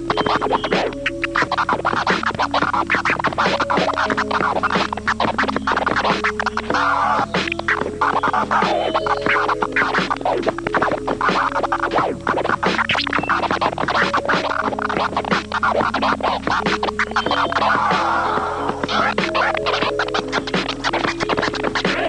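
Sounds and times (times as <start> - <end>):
looping backing track: 0.0 - 22.0
vinyl record scratching: 0.0 - 22.0.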